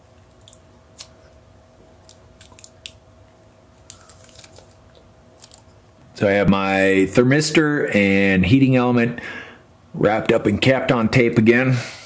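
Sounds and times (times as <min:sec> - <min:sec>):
tape crackling as it unwinds: 0:02.0 - 0:03.0, 0:03.8 - 0:05.8.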